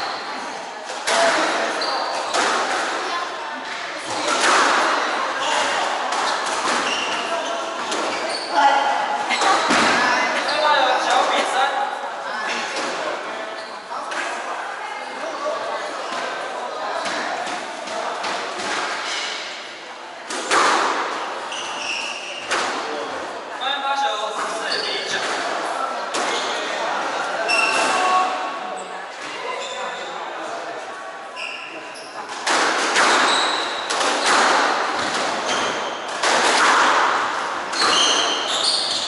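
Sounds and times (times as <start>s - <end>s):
background voices chattering: 0.0s - 39.0s
shoes squeaking on wooden floor: 5.4s - 11.2s, 21.5s - 22.6s, 33.0s - 36.1s, 37.7s - 39.0s.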